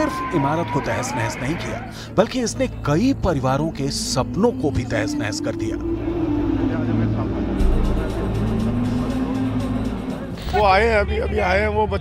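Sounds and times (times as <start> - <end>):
low sustained music drone: 2.6 - 10.5.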